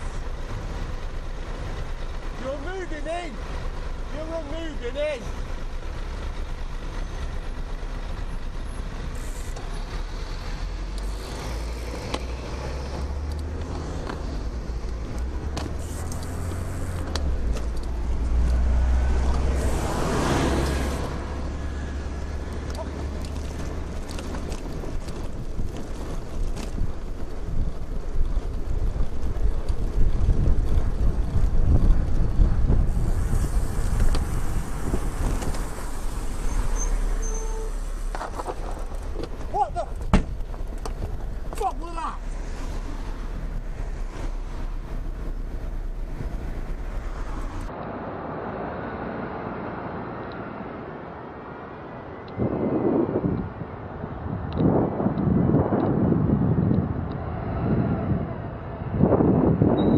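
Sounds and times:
low wind rumble on microphone: 0.0 - 59.9
road traffic: 0.0 - 59.9
vehicle passing: 8.6 - 26.1, 30.2 - 54.4.

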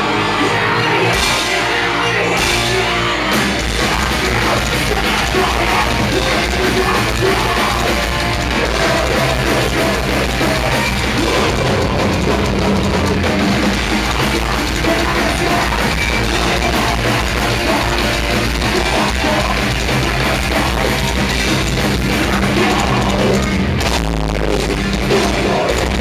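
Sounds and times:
metal band playing live: 0.0 - 26.0.

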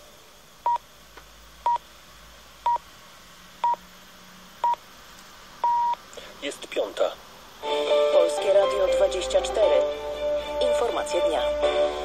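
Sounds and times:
radio time signal beeps: 5.6 - 6.0.

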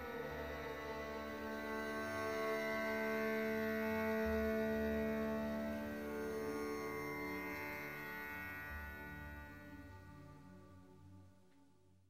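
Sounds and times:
film music with held drone tones: 0.0 - 12.0.

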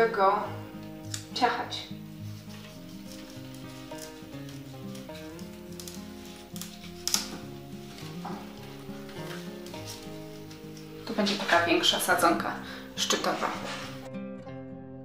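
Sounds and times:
quiet instrumental music: 0.0 - 15.0
plant stem cutting clicks: 0.8 - 1.4, 3.1 - 8.1
rustling leaves and gloves: 1.9 - 12.2.

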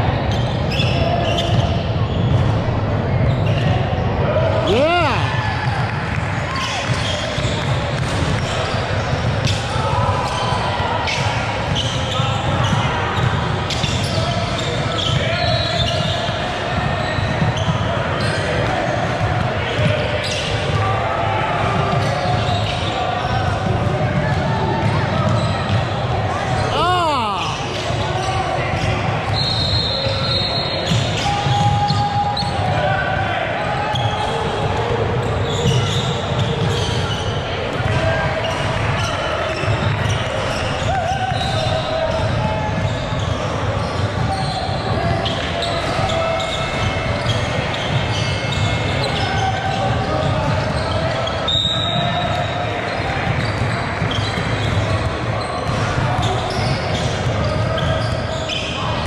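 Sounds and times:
hubbub of voices: 0.0 - 59.0.

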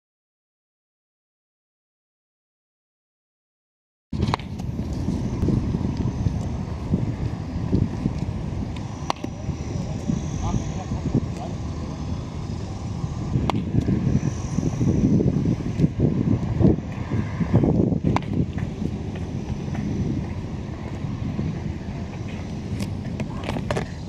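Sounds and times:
bat hitting ball: 4.2 - 4.6, 9.0 - 9.3, 13.4 - 13.8, 18.1 - 18.4
wind rumbling on microphone: 4.2 - 24.0.

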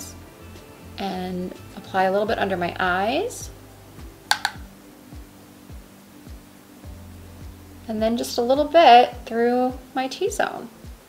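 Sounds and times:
quiet background music: 0.0 - 11.0
sharp clicks: 4.3 - 4.7.

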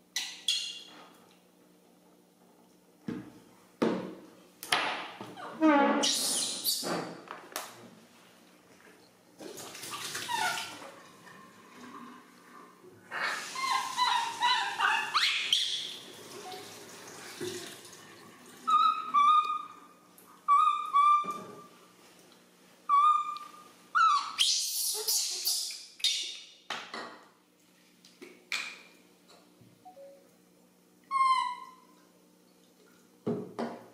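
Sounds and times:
baby monkey screeching cries: 13.3 - 15.9, 18.7 - 19.8, 20.5 - 21.3, 22.9 - 26.2, 31.1 - 31.8.

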